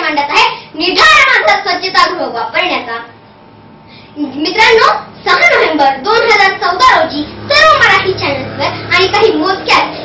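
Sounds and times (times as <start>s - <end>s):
girl speaking: 0.0s - 3.2s, 4.1s - 10.0s.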